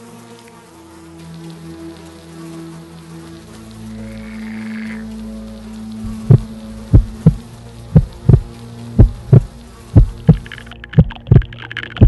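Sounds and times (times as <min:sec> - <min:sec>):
low steady drone: 0:00.0 - 0:12.0
heartbeat thumps: 0:06.1 - 0:11.6.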